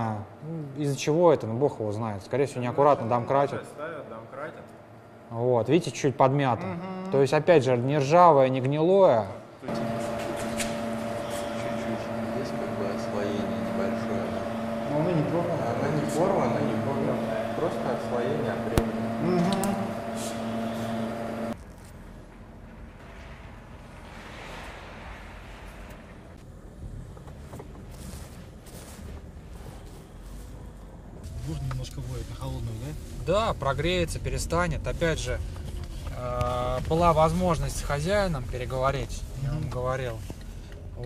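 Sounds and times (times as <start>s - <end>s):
minivan engine idling: 9.7s - 21.6s.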